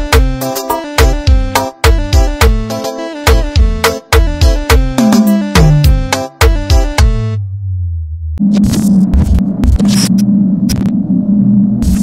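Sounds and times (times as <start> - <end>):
deep bass note: 7.0 - 12.0
electronic glitch buzz with crackles: 8.4 - 11.0, 11.8 - 12.0.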